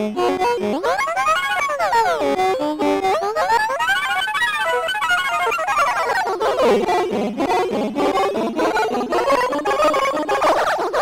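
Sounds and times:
warbling stuttering electronic voice: 0.1 - 11.0.

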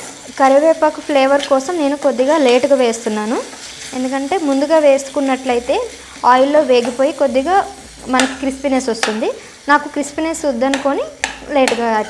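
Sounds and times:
faint frying sizzle: 0.0 - 12.0.

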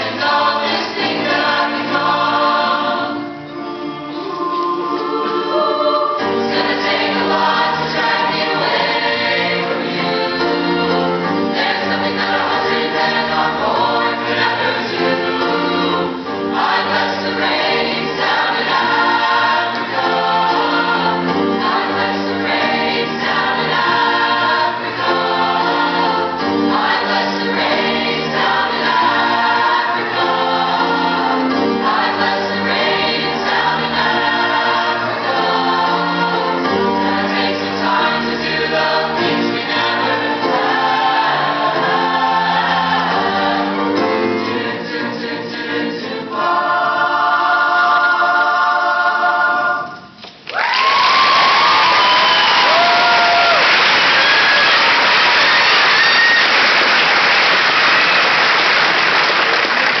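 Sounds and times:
mixed choir singing in harmony: 0.0 - 50.2, 51.2 - 58.6.

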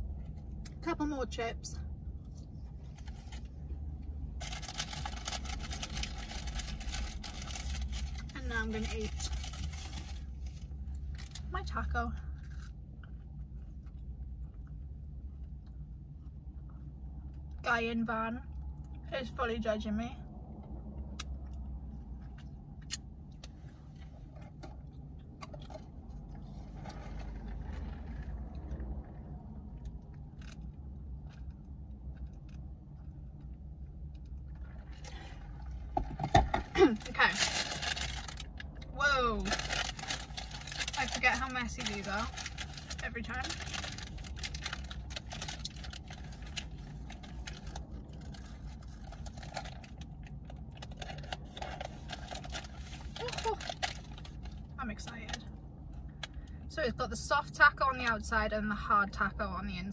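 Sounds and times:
steady low hum: 0.0 - 59.9
paper wrapper rustling: 4.4 - 11.4, 36.8 - 38.6, 39.4 - 54.6.

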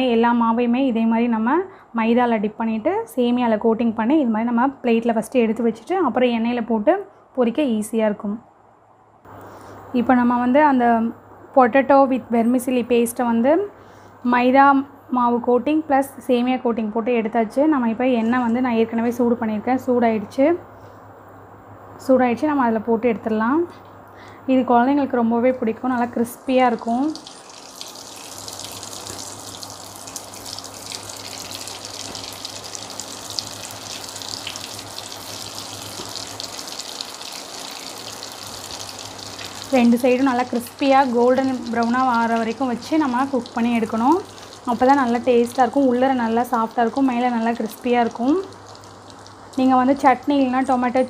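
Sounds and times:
cutlets sizzling in hot oil: 26.8 - 50.0.

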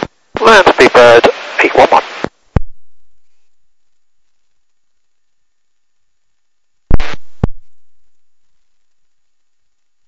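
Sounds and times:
voice over hissy radio: 0.0 - 2.3
radio transmission click: 0.0 - 2.7.

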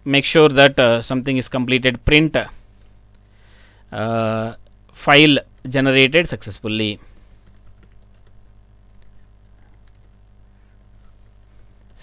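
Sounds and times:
low steady hum: 0.0 - 12.0
keyboard typing: 7.4 - 10.2.

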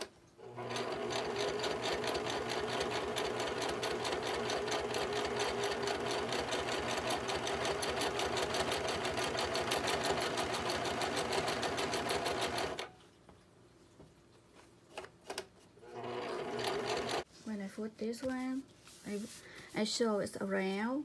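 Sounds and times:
sewing machine stitching: 0.0 - 12.9, 15.8 - 17.2.

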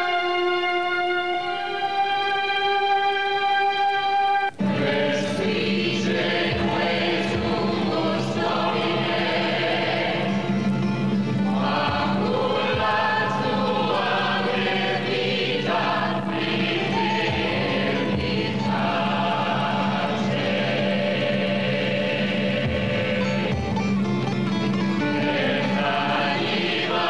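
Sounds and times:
choir singing: 0.0 - 24.1, 24.9 - 27.0.

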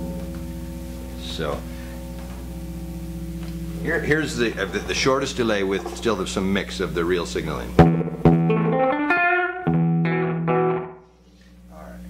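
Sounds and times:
buzzing guitar amplifier tone: 0.0 - 12.0.

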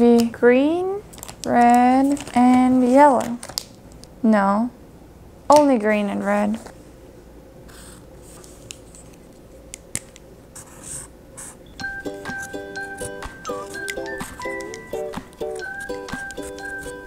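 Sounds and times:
marker scratching on paper: 10.6 - 11.6, 12.2 - 17.0
light background music: 11.7 - 17.0.

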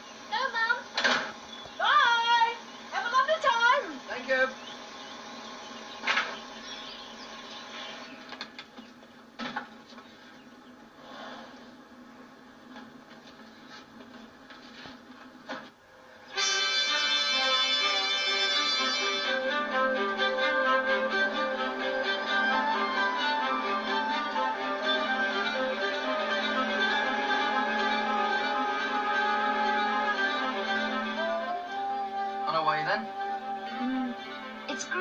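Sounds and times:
voices calling: 0.1 - 9.2
music with reed-like chords: 16.3 - 35.0.

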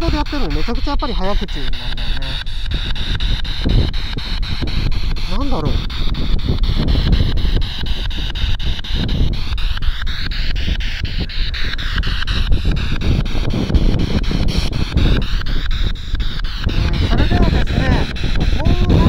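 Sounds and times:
radio scanner static sweeping: 0.0 - 19.0
wind buffeting microphone: 0.0 - 19.0.

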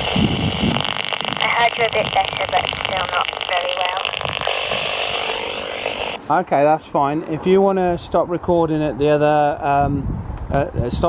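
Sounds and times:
radio static hiss: 0.0 - 6.2
thin voice over radio speaker: 1.4 - 6.2.

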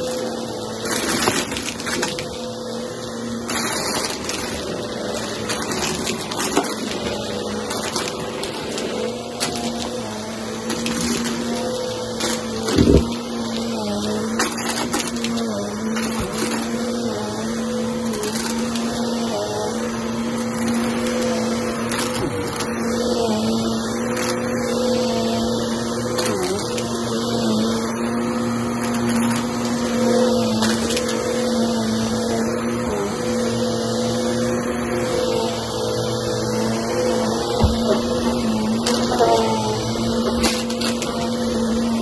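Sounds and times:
vacuum cleaner running on rug: 0.0 - 42.0.

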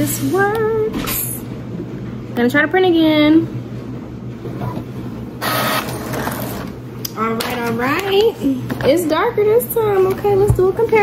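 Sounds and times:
inkjet printer whirring: 5.4 - 6.8.

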